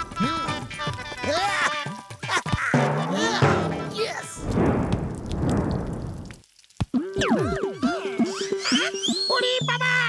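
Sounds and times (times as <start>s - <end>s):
background music: 0.0s - 4.5s, 6.9s - 10.0s
grainy rushing noise: 3.8s - 6.4s.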